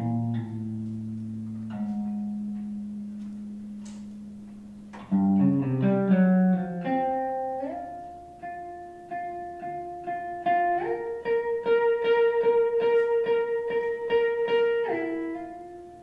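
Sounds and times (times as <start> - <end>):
electric guitar improvising: 0.0 - 16.0.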